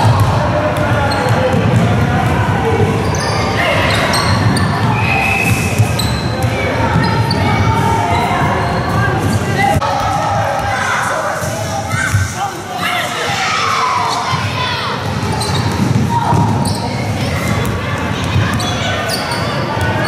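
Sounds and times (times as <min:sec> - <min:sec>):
basketballs bouncing on court floor: 0:00.0 - 0:02.4, 0:15.0 - 0:18.9
hubbub of young voices: 0:00.0 - 0:20.0.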